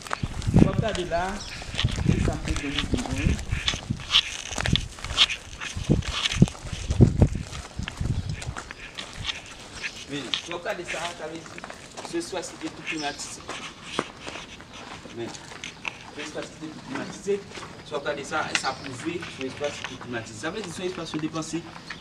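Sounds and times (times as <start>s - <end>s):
footsteps on grass and gravel: 0.0s - 22.0s
indistinct voices: 0.5s - 21.8s
camera handling noise: 1.4s - 11.2s, 12.9s - 16.4s.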